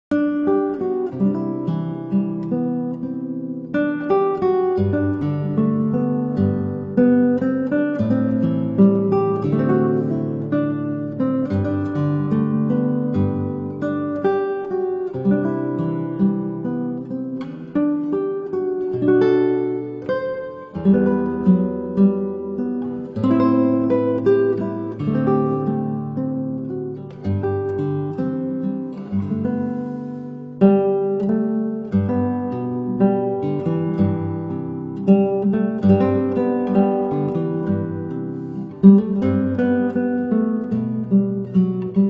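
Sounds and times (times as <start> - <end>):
acoustic guitar music: 0.0 - 42.0.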